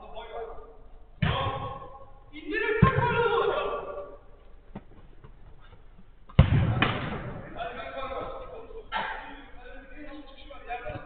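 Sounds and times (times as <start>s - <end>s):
men calling out: 2.4s - 4.2s
football kicked thud: 6.4s - 7.4s.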